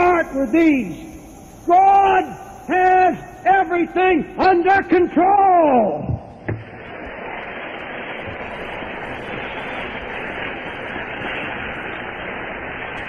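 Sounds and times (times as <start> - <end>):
static hiss: 0.0 - 13.0.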